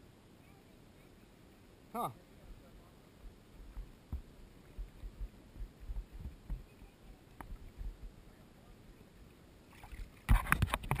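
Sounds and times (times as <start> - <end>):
water splashing and sloshing: 9.6 - 11.0.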